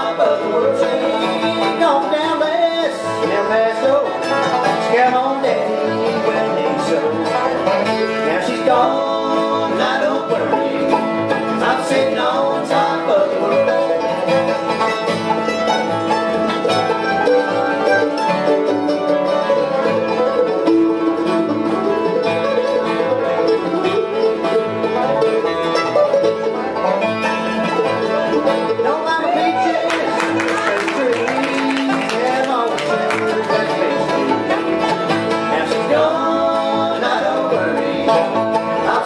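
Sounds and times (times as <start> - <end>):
acoustic guitars: 0.0 - 39.0
banjo: 0.0 - 39.0
mandolin: 0.0 - 39.0
upright bass: 0.0 - 39.0.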